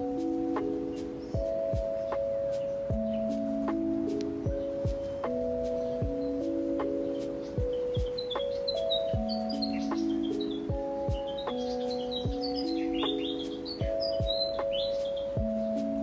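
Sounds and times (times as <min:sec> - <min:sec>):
soft sustained chords: 0:00.0 - 0:16.0
slow soft low beats: 0:02.9 - 0:06.4
short high bird-like chirps: 0:07.2 - 0:15.4.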